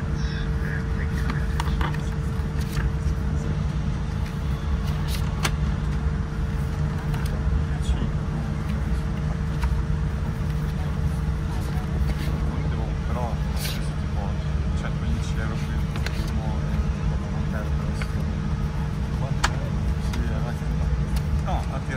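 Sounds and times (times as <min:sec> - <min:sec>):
airplane cabin rumble: 0:00.0 - 0:21.9
magazine pages rustling: 0:04.2 - 0:05.6.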